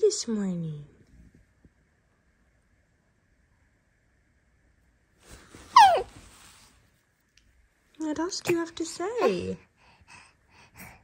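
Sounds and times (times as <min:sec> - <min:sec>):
baby squealing: 0:05.7 - 0:06.1
soft breathy sounds: 0:08.2 - 0:11.0.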